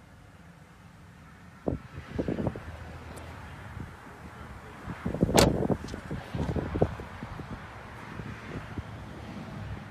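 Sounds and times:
wind on microphone: 4.9s - 9.0s
car door shutting: 5.3s - 6.6s.

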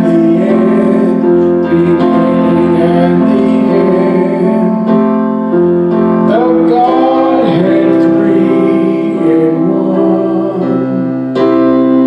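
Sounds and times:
person singing: 0.0s - 5.6s, 6.2s - 12.0s
sustained keyboard chords: 0.0s - 12.0s.

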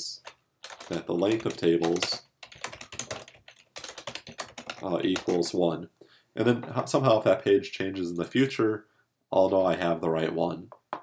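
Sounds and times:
computer keyboard clicks: 0.6s - 5.4s.

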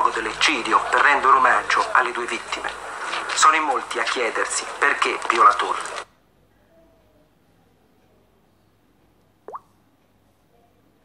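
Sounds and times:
faint background hum: 0.0s - 11.0s.

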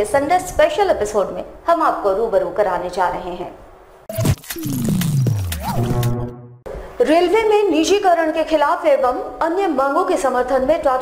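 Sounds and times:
tone sweeping down in pitch: 4.1s - 6.6s
sharp hits: 4.1s - 6.7s.

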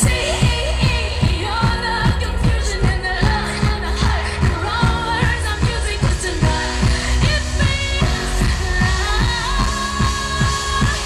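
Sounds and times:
live pop band playing: 0.0s - 11.0s
woman singing wordless vocals: 0.0s - 11.0s.

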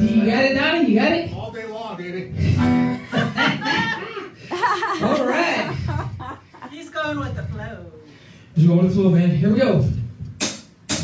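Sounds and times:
man talking through microphone: 0.0s - 2.6s, 8.6s - 10.1s
band music: 2.3s - 3.7s
man chuckling: 2.4s - 6.7s.

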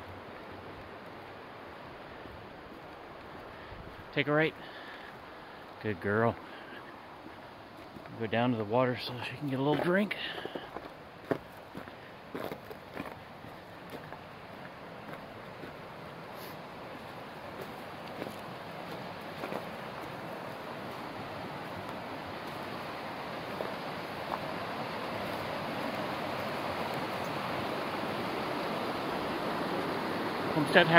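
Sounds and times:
creek rushing over stones: 0.0s - 30.9s.

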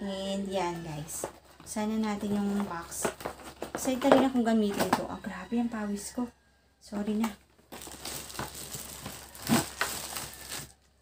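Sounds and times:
packaging rustling and crinkling: 0.9s - 5.0s, 7.5s - 11.0s.

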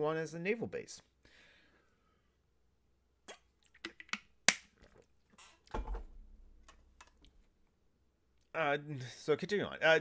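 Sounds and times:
man gulping from a bottle: 3.2s - 5.8s.

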